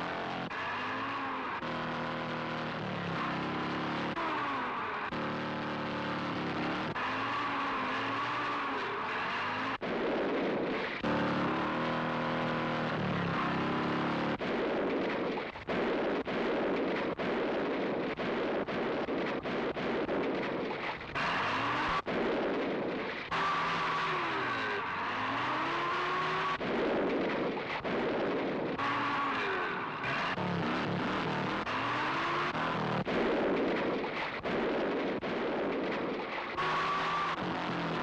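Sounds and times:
motorcycle and jeep engines revving: 0:00.0 - 0:38.0
noisy rush: 0:00.0 - 0:38.0.

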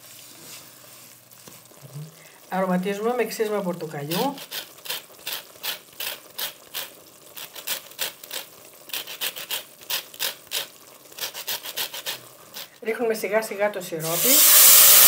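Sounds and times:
wooden spoon scraping a pot: 0:04.0 - 0:12.8.

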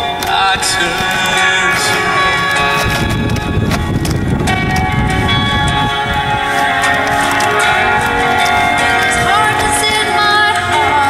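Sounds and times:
instrumental backing track: 0:00.0 - 0:11.0.

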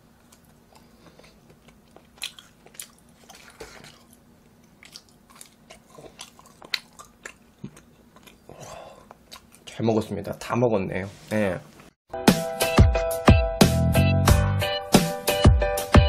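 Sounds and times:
close-up chewing: 0:00.2 - 0:09.7.

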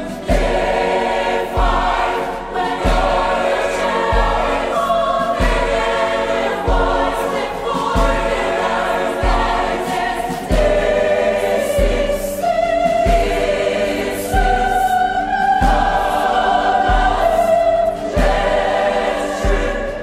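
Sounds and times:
choir singing gospel: 0:00.0 - 0:20.0
low drum beat: 0:00.0 - 0:20.0.

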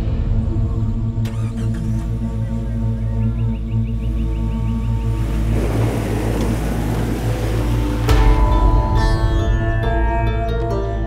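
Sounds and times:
dramatic background score: 0:00.0 - 0:11.0.

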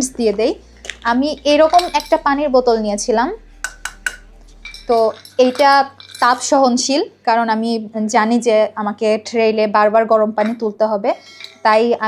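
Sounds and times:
light metallic clinks of bottle: 0:01.0 - 0:02.4, 0:03.7 - 0:06.6.

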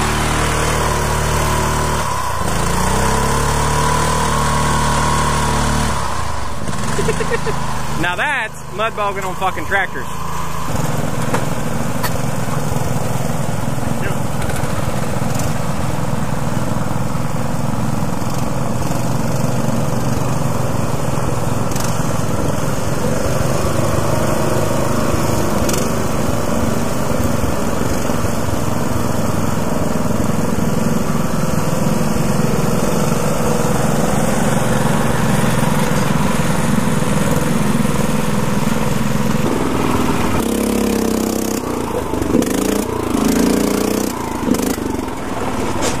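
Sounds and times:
small tractor engines running: 0:00.0 - 0:46.0.

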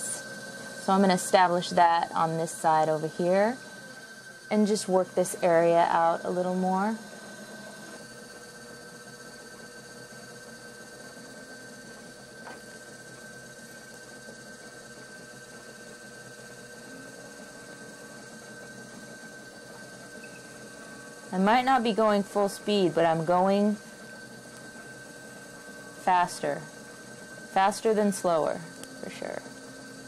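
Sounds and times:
pottery wheel humming and whining: 0:00.0 - 0:30.0.

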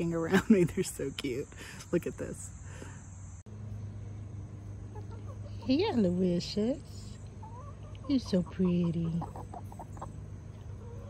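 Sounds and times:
hen clucking softly: 0:04.9 - 0:05.8, 0:07.3 - 0:11.0.

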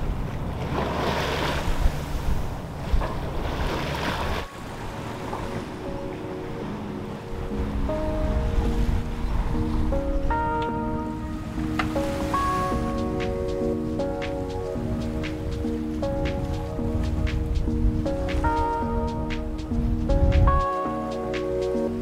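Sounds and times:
water splashing along boat hull: 0:00.0 - 0:22.0
wind on microphone: 0:00.0 - 0:22.0
gentle background music: 0:04.4 - 0:22.0.

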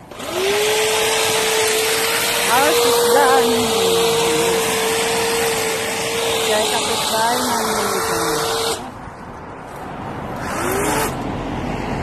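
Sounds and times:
electric motor whining: 0:00.0 - 0:08.9, 0:10.4 - 0:11.2.

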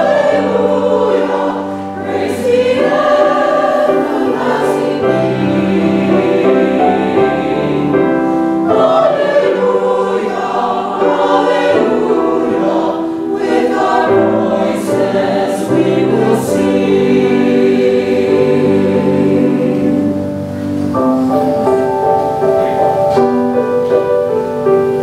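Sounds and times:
church choir singing: 0:00.0 - 0:23.0.

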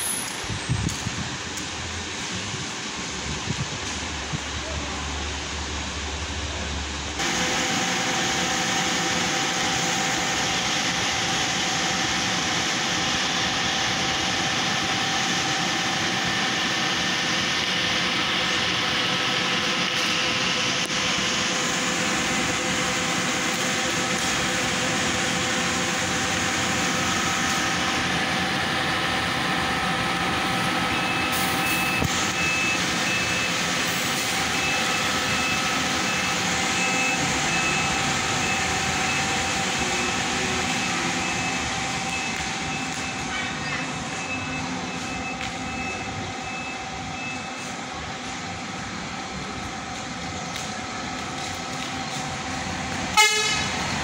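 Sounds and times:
bus diesel engine running: 0:00.0 - 0:54.0.

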